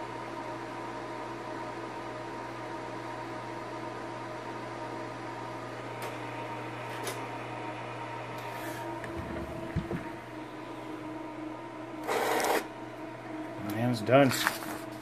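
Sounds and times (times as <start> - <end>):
plotter hum: 0.0 - 15.0.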